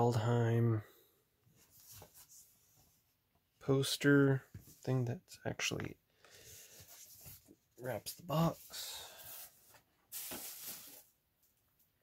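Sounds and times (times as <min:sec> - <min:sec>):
paper rustling: 0:09.2 - 0:11.1.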